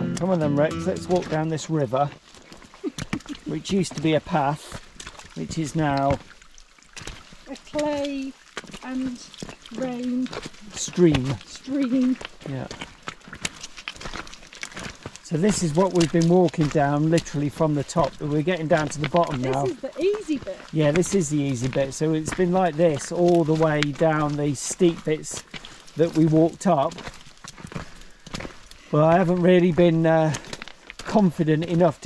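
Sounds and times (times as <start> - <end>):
footsteps crunching on wet stones: 0.0 - 32.0.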